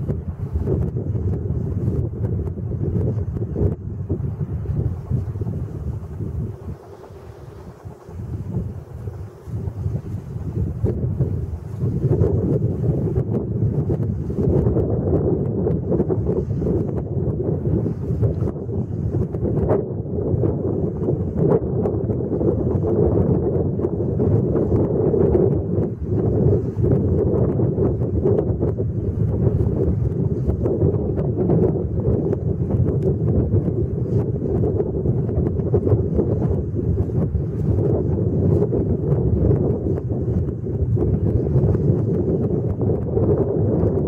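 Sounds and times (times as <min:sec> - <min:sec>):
wind buffeting microphone: 0:00.0 - 0:44.0.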